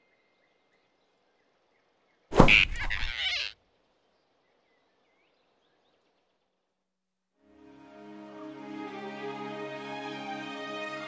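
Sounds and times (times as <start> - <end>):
faint bird chirp: 0.0 - 6.7
faint forest ambience: 0.0 - 11.0
cartoon character startled cry: 2.5 - 3.6.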